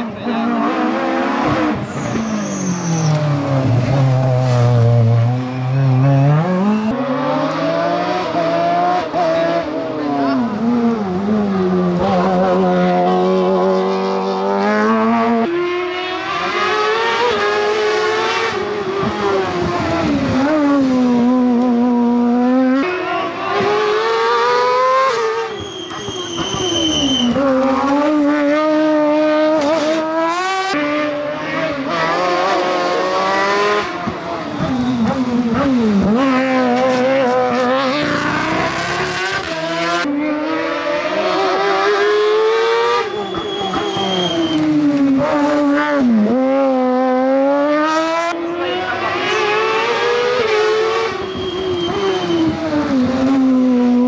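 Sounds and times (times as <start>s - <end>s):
racing car engines revving: 0.0s - 54.0s
high squeal: 1.8s - 3.4s, 25.4s - 27.4s, 43.0s - 44.7s, 51.1s - 52.7s.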